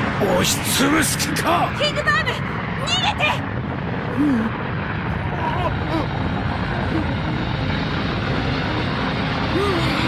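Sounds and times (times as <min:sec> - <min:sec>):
dense rumble: 0:00.0 - 0:10.0.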